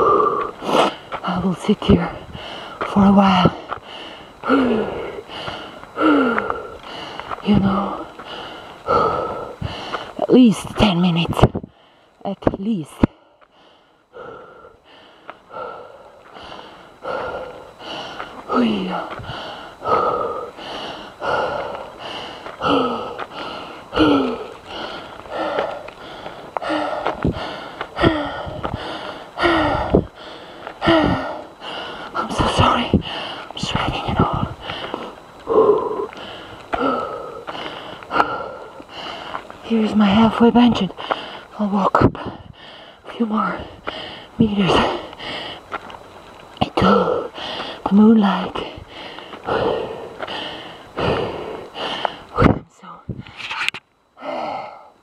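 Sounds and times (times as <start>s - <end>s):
person breathing heavily: 0.0s - 1.3s, 2.0s - 10.3s, 11.6s - 12.2s, 13.0s - 40.2s, 40.9s - 45.9s, 46.6s - 53.5s, 54.1s - 55.0s
voiced sighs: 3.9s - 10.2s, 13.5s - 33.5s, 34.2s - 39.4s, 48.5s - 52.4s.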